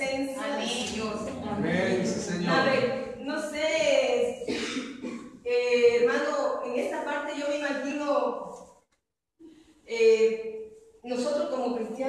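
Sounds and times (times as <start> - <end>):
woman preaching: 0.0 - 4.6, 5.5 - 8.5, 9.9 - 10.4, 11.1 - 12.0.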